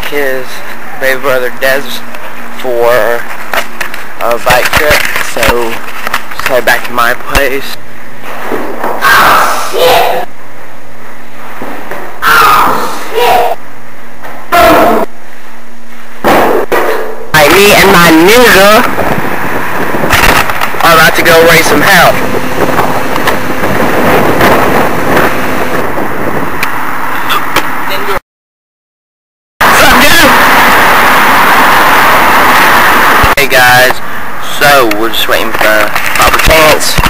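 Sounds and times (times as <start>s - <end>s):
loud steady rushing noise: 0.0s - 28.2s, 29.6s - 37.0s
steady low hum: 0.0s - 28.2s.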